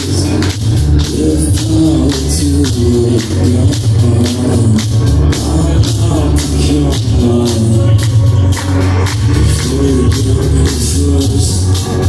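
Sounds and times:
drum kit: 0.0s - 12.0s
electric bass: 0.0s - 12.0s.

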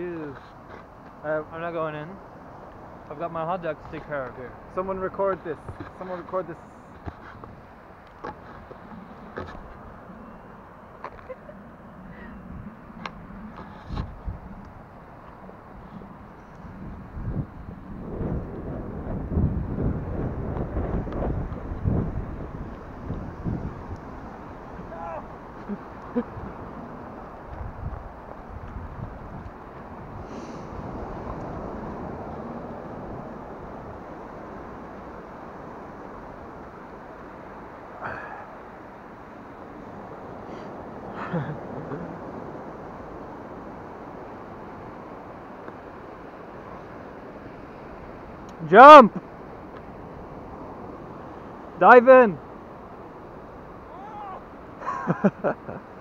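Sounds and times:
wind buffeting microphone: 11.1s - 54.8s
surf breaking on beach: 16.8s - 56.0s.

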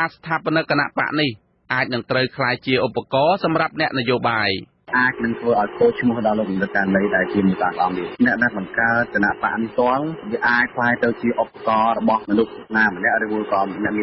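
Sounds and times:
radio news voice talking: 0.0s - 14.0s.

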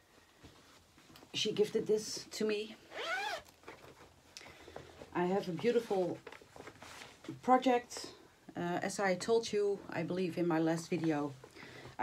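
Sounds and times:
fabric bag rustling: 2.9s - 7.5s.

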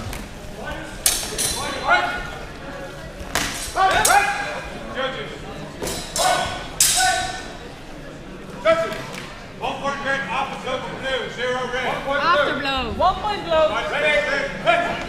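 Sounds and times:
voices shouting in echoing hall: 0.7s - 15.0s
swords clashing: 1.0s - 1.7s, 5.8s - 7.4s.

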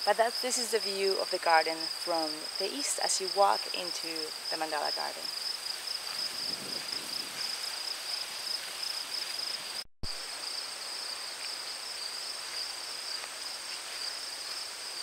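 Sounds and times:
crickets trilling: 0.0s - 15.0s.

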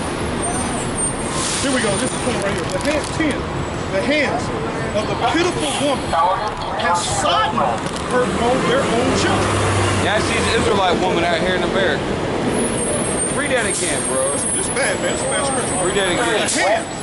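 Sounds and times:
bus brakes squealing: 0.3s - 2.4s, 12.5s - 17.0s
people's voices: 1.5s - 17.0s.

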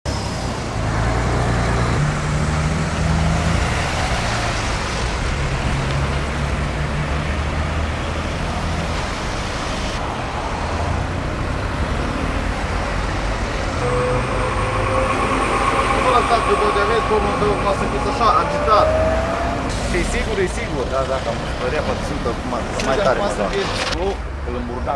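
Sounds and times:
diesel engines humming: 0.1s - 24.9s.

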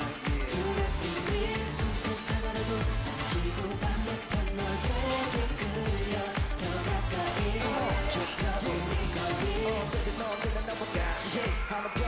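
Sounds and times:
male group vocals: 0.0s - 12.0s
pop dance track with steady beat: 0.0s - 12.0s.

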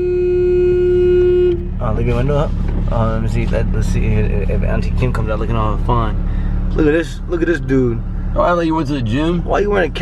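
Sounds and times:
car horn blast: 0.0s - 2.2s.

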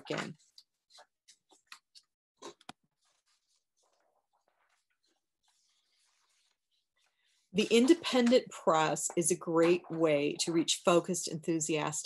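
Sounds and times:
soft scratchy rustles: 2.8s - 8.2s.

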